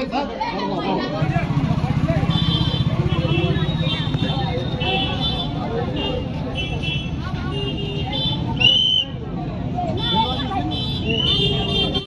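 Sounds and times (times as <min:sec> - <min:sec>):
crowd chatter: 0:00.0 - 0:12.0
vehicle engine running: 0:01.1 - 0:08.3.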